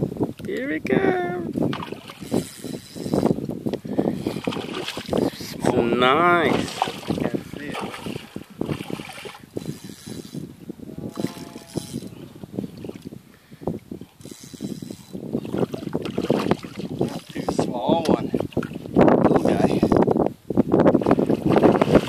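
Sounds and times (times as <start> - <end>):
wind buffeting microphone: 0.0 - 22.0
water lapping against rocks: 4.0 - 5.8, 6.4 - 10.2, 15.3 - 19.6.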